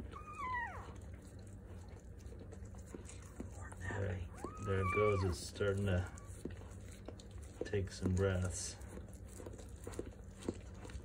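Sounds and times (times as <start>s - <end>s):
newborn puppy crying: 0.0s - 1.5s, 3.4s - 6.7s
dog licking wetly: 0.0s - 11.0s.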